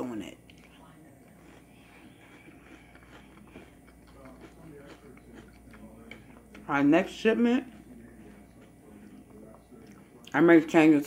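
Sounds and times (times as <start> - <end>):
chewing cereal: 0.5 - 10.4.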